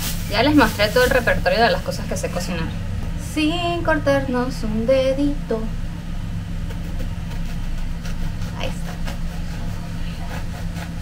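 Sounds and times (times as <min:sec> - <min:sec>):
steady low hum: 0:00.0 - 0:11.0
knife sawing bread crust: 0:06.7 - 0:11.0.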